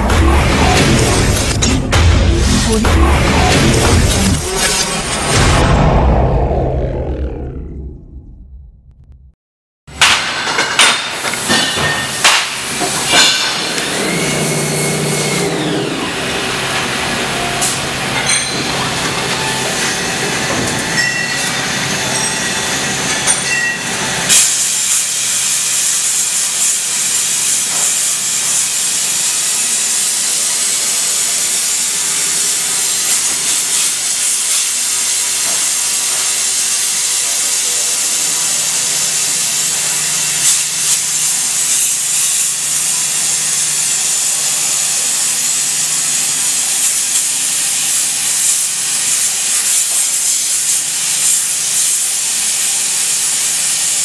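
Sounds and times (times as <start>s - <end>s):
low hum: 0.0s - 9.4s
lathe running: 12.6s - 18.2s.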